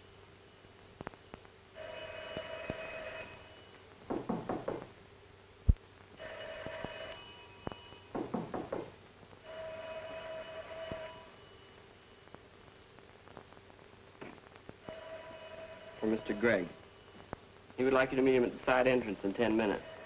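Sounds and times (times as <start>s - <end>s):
telephone bell ringing: 1.8s - 3.8s, 6.2s - 8.1s, 9.4s - 12.2s, 14.8s - 17.1s, 19.4s - 20.0s.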